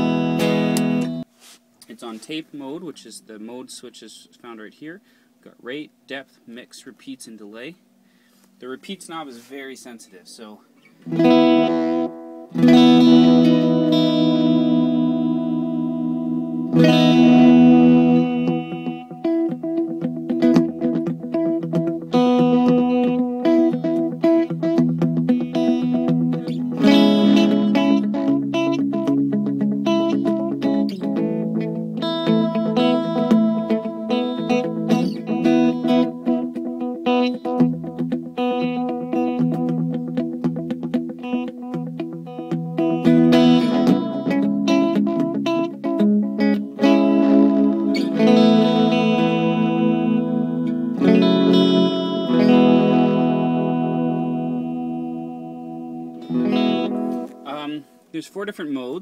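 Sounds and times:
electric guitar chords with echo: 0.0s - 1.3s, 11.0s - 58.0s
picked guitar notes: 0.0s - 4.8s, 8.5s - 59.0s.

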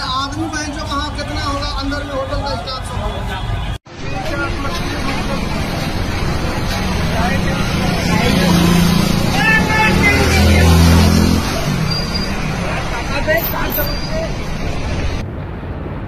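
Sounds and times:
many people talking: 0.0s - 15.2s
road traffic: 0.0s - 16.0s.

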